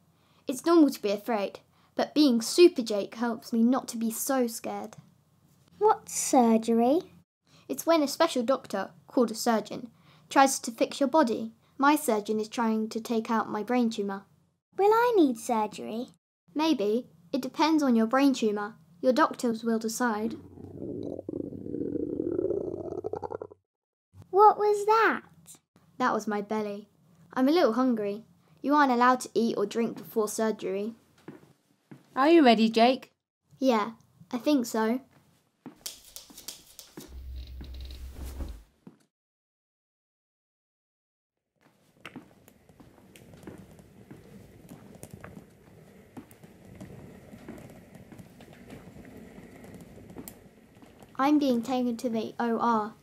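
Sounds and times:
stomach rumbling: 20.3s - 23.6s, 41.7s - 51.2s
footsteps: 35.1s - 39.0s, 41.6s - 51.2s
hospital bed rolling: 41.8s - 52.0s.

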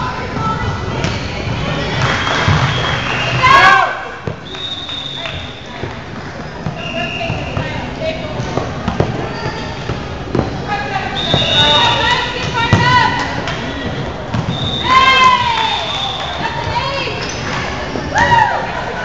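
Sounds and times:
sneakers squeaking on court: 5.2s - 15.2s
players calling out: 9.0s - 19.0s
volleyball thuds: 11.2s - 14.9s.

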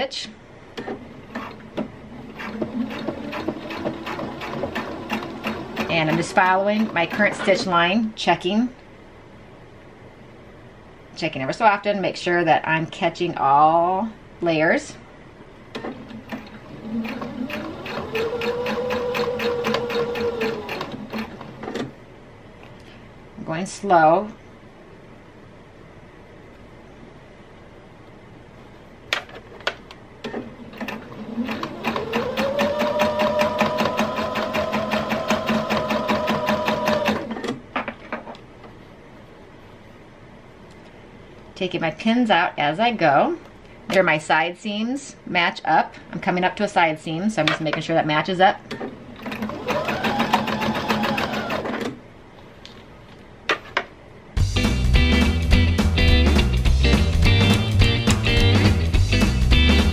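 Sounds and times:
sewing machine stitching: 0.8s - 7.7s, 15.8s - 21.9s, 30.2s - 37.6s, 48.7s - 52.0s.

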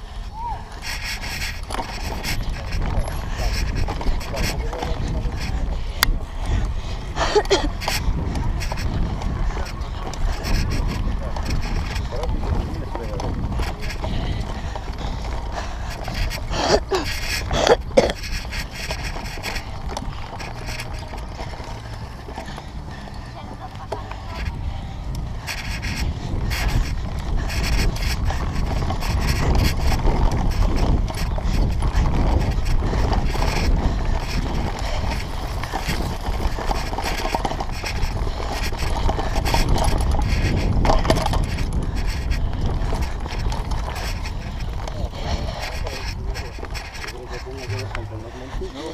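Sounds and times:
bike rolling on dirt track: 0.0s - 48.9s
steady low rumble: 0.0s - 48.9s
wind buffeting microphone: 0.0s - 48.9s
bike rattling clicks: 0.7s - 48.9s.

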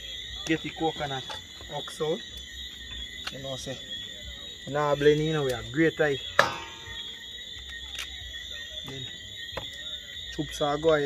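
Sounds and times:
night insects trilling: 0.0s - 11.0s.

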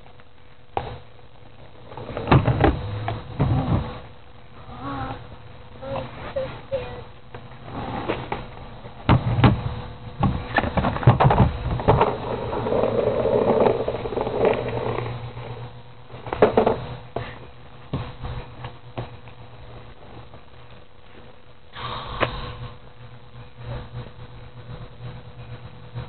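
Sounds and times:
skateboard wheels rumbling on asphalt: 0.0s - 4.2s, 7.4s - 21.4s.

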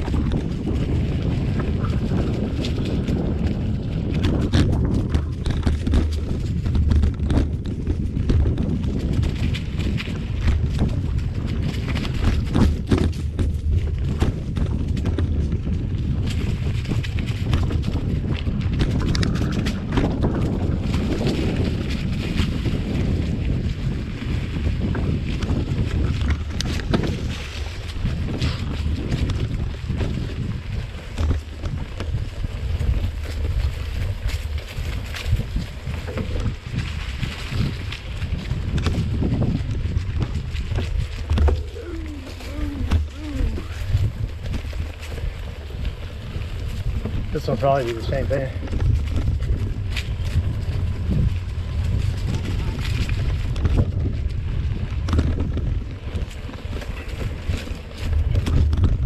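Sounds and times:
bike clicks and rattles: 0.0s - 59.0s
bike rolling on dirt trail: 0.0s - 59.0s
wind buffeting microphone: 0.0s - 59.0s.

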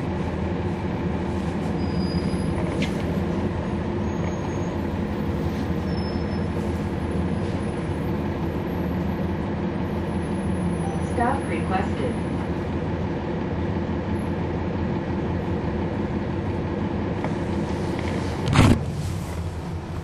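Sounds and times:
bus diesel engine droning: 0.0s - 20.0s
road noise: 0.0s - 20.0s.

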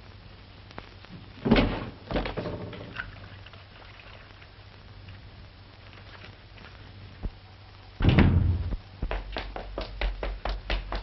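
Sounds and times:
light crackle: 0.0s - 8.0s
film soundtrack hiss and hum: 0.0s - 11.0s.

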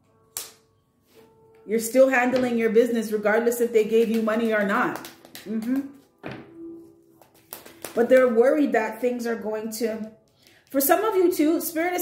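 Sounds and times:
cards being shuffled: 4.1s - 6.4s, 7.2s - 8.1s.

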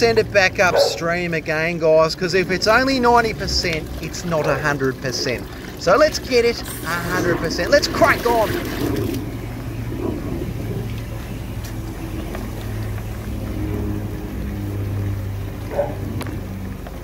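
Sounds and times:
drain jetter droning: 0.0s - 17.0s.

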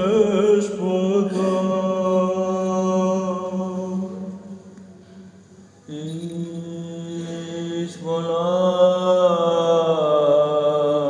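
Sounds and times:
chanting voice: 0.0s - 11.0s
low vocal drone: 0.0s - 11.0s.

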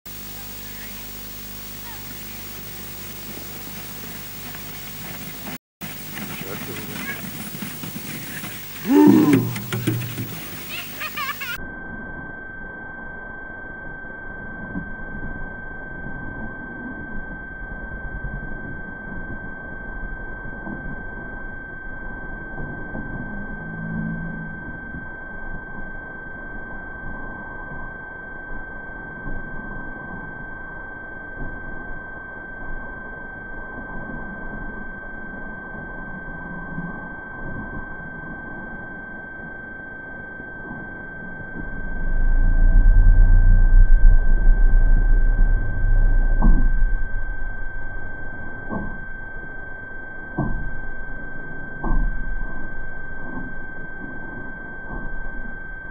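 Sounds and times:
low rumbling hiss: 0.1s - 11.6s, 41.8s - 48.7s
fainter higher tone: 8.6s - 29.1s, 34.8s - 55.9s
high-pitched electronic tone: 40.7s - 53.4s.

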